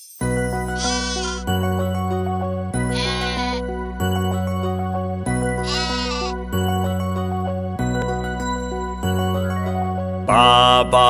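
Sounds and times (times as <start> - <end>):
bouncy children's song: 0.8 - 1.4, 10.3 - 11.0
sheep bleating: 0.8 - 1.5, 2.9 - 3.6, 5.6 - 6.4.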